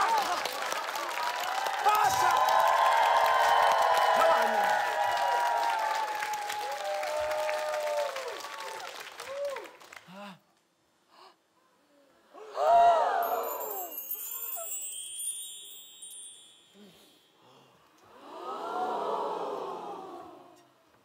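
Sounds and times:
group of voices going ooh: 12.4s - 14.8s, 18.1s - 20.6s
shimmering magic chimes: 13.2s - 17.6s.

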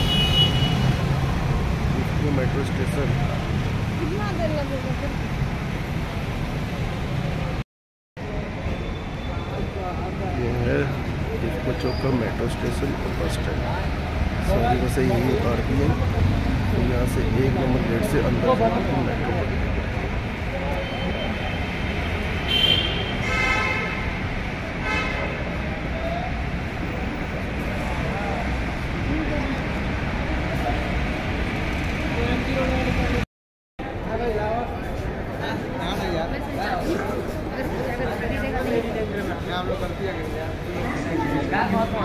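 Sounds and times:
vehicle horns honking: 0.0s - 1.1s, 20.8s - 25.6s
road traffic rumble: 0.0s - 7.6s, 8.2s - 42.0s.

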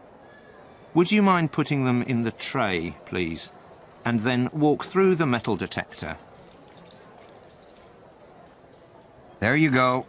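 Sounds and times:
keys jingling: 6.2s - 7.9s.

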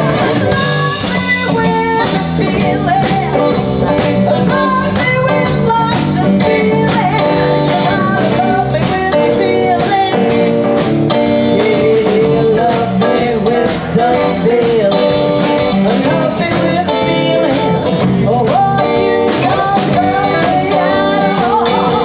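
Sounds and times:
drum kit: 0.0s - 22.0s
electric guitars: 0.0s - 22.0s
woman singing: 0.0s - 22.0s.

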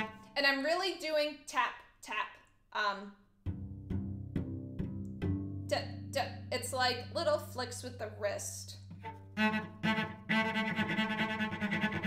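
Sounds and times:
cello spiccato bow strokes: 0.0s - 0.3s, 3.5s - 12.0s.

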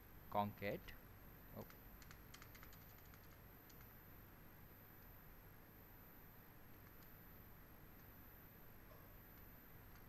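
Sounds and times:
computer keyboard key presses: 1.6s - 3.9s.

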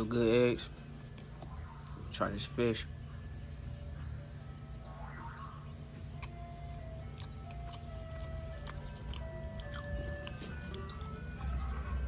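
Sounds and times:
ice cream truck jingle: 0.0s - 12.0s.

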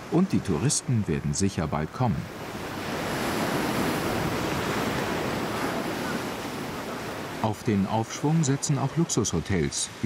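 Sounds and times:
waves breaking: 0.0s - 10.0s
wind: 0.0s - 10.0s.

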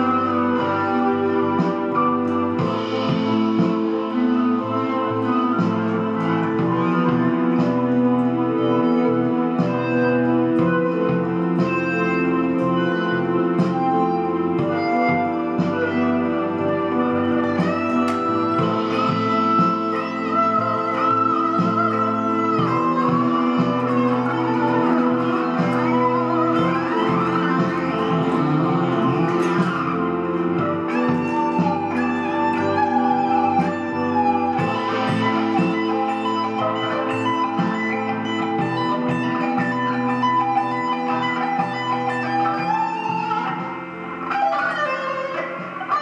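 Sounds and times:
electric guitar lead melody: 0.0s - 46.0s
orchestral backing chords: 0.0s - 46.0s.

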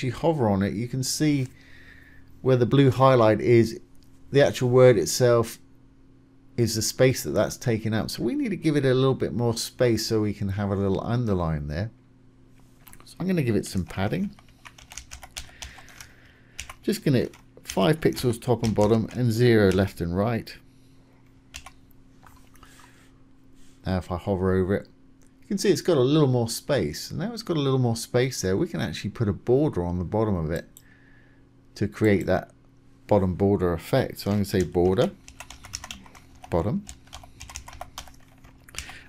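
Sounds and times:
faint low hum: 0.0s - 39.0s
computer keyboard typing: 13.8s - 20.0s, 21.5s - 21.8s, 34.3s - 39.0s.

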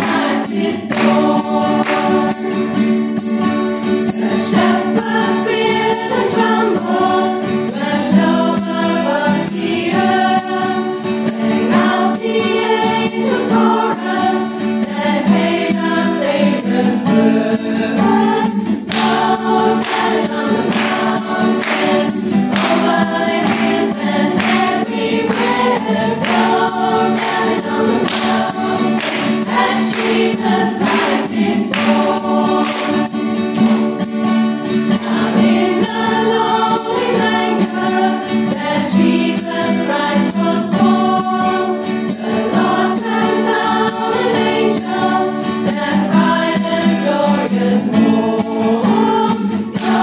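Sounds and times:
strummed acoustic guitars: 0.0s - 50.0s
women's choir singing: 0.0s - 50.0s.

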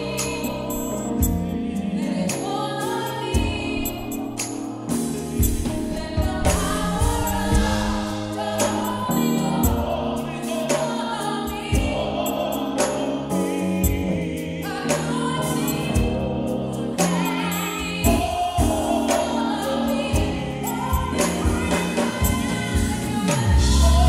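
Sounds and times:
choir singing: 0.0s - 24.0s
organ playing gospel chords: 0.0s - 24.0s.

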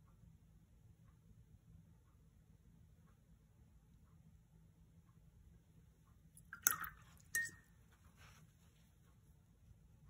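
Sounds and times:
water sloshing: 6.4s - 7.6s.

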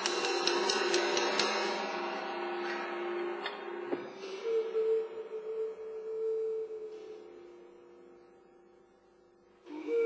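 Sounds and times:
metal percussion ringing: 0.0s - 3.8s.

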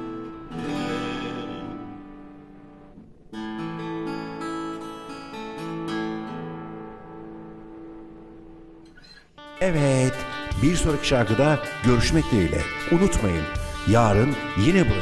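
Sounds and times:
acoustic guitar strummed chords: 0.0s - 15.0s.

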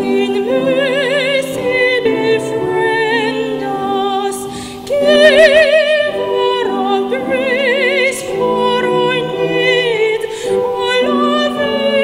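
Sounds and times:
piano accompaniment: 0.0s - 12.0s
woman singing classical style: 0.0s - 12.0s.

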